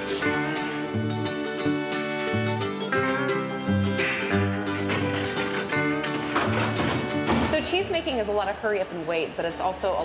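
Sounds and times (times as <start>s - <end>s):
acoustic plucked string tune: 0.0s - 8.2s.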